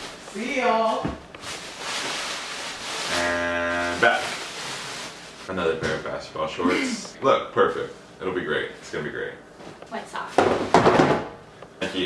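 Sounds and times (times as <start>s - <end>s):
noisy hiss: 1.4s - 9.3s.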